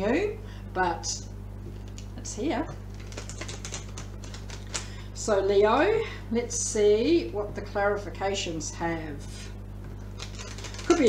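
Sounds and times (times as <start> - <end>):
cards being shuffled: 2.9 - 4.9, 10.2 - 11.0.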